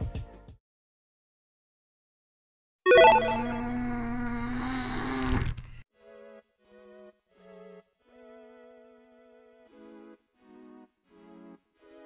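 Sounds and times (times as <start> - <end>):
held tone with overtones: 2.9 - 4.2.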